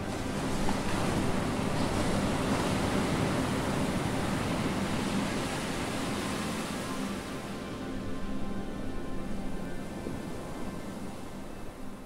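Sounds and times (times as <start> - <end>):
sea waves washing onto shore: 0.0 - 8.9.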